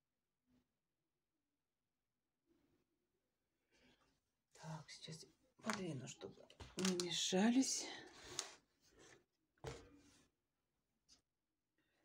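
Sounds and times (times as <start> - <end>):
plastic cup clicking on table: 6.8 - 7.1.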